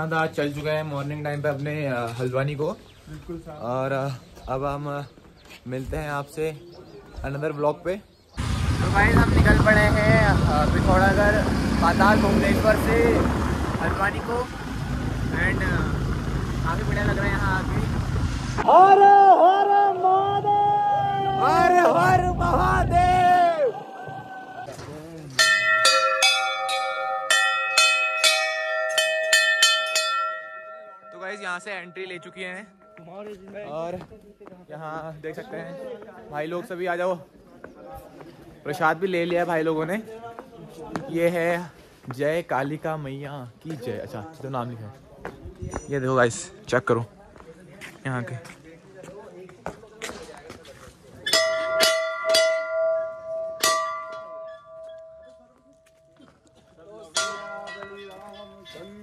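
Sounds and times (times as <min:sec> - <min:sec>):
temple bell ringing: 0:25.4 - 0:33.5, 0:51.2 - 0:56.2, 0:57.0 - 0:59.0.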